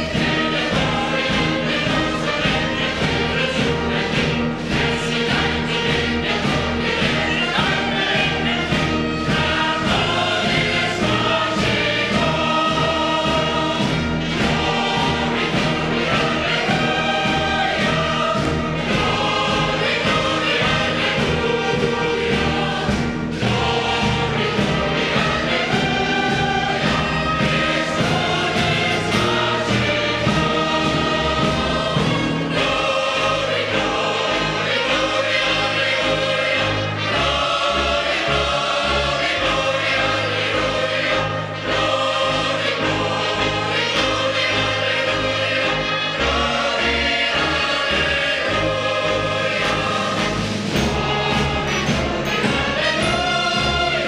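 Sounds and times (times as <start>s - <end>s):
brass band accompaniment: 0.0s - 54.0s
choir singing: 0.0s - 54.0s.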